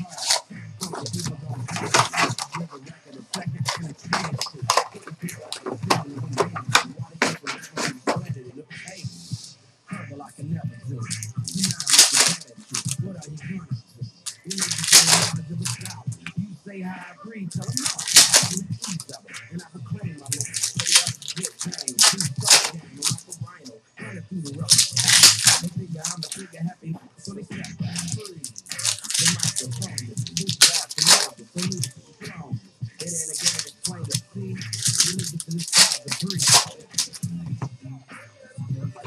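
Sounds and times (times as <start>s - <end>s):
card pack wrappers tearing: 0.0s - 8.2s, 11.1s - 13.0s, 14.3s - 16.0s, 17.6s - 19.2s, 20.2s - 23.4s, 24.6s - 26.5s, 27.9s - 31.9s, 33.0s - 37.2s
cards being handled: 0.0s - 8.3s, 11.1s - 13.2s, 14.3s - 16.0s, 17.6s - 19.2s, 20.2s - 23.4s, 24.6s - 26.6s, 27.3s - 31.9s, 33.0s - 37.3s.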